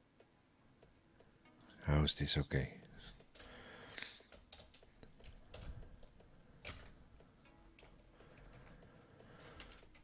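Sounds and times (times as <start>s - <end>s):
computer keyboard keystrokes: 3.1s - 10.0s.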